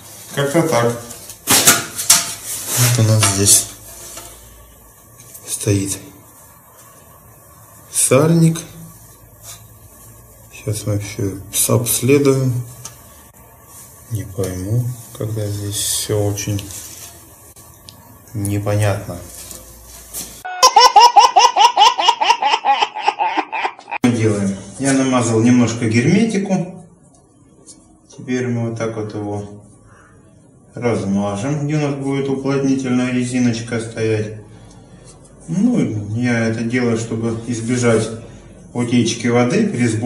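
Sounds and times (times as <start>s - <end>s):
high-pitched laughter: 20.5s - 24.0s.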